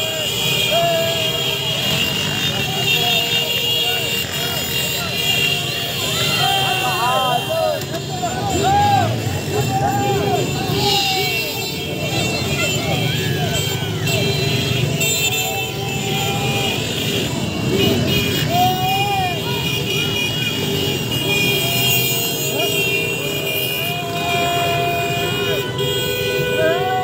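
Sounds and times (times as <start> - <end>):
crowd shouting and cheering: 0.0 - 27.0
high-pitched horns: 0.0 - 27.0
motorcycle engines running: 0.0 - 27.0.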